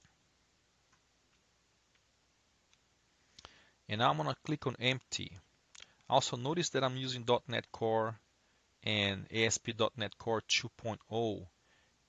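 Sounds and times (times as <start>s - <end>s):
man's voice: 3.9s - 5.4s, 6.1s - 8.2s, 8.8s - 11.5s.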